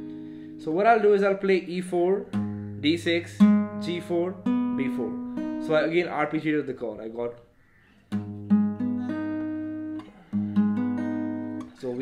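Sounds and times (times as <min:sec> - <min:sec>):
acoustic guitar fingerpicking: 0:00.0 - 0:06.6, 0:07.5 - 0:12.0.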